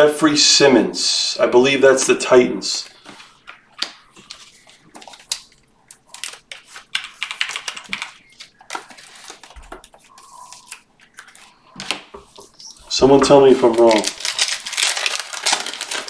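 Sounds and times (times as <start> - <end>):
cards and packaging clicks and rustles: 2.8 - 16.0.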